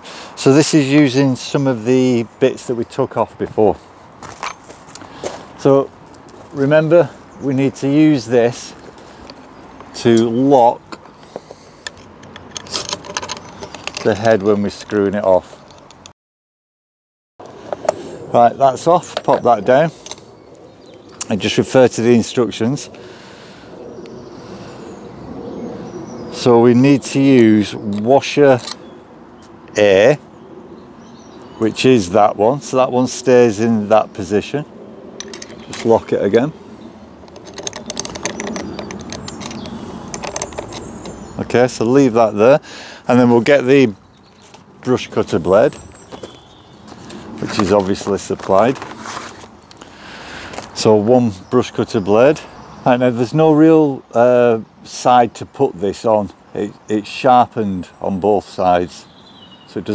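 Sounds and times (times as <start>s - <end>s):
metallic clicks and rattles: 11.8s - 14.6s, 35.2s - 36.0s, 37.2s - 41.2s.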